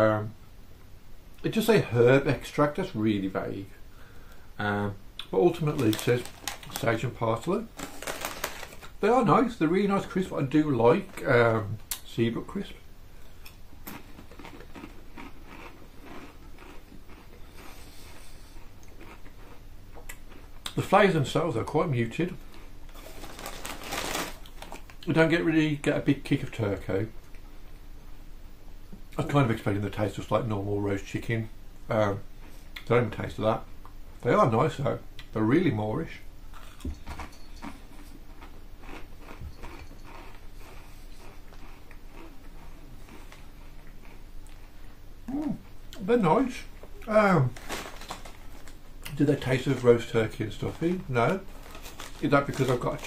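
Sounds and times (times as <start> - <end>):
person chewing crisps: 5.2 - 7.0, 7.7 - 9.0, 13.2 - 20.8, 22.4 - 25.1, 36.5 - 44.9, 46.8 - 53.0.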